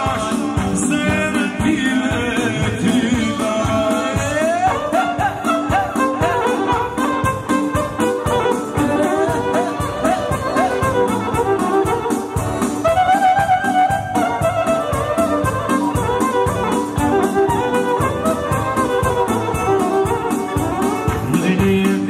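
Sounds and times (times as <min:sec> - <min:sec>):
electronic keyboard: 0:00.0 - 0:22.0
steady drum beat: 0:00.0 - 0:22.0
violin melody: 0:04.3 - 0:21.8.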